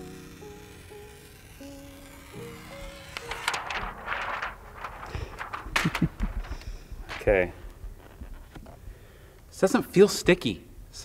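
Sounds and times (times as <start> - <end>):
plastic sheet rustling: 0.0 - 8.7.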